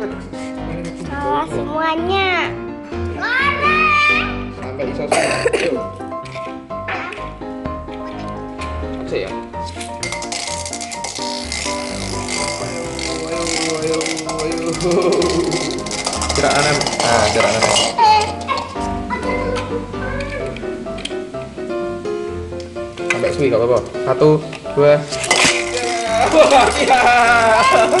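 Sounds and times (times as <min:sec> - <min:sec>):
background music: 0:00.0 - 0:28.0
spinning tops clashing in metal wok: 0:09.8 - 0:18.8, 0:25.1 - 0:28.0.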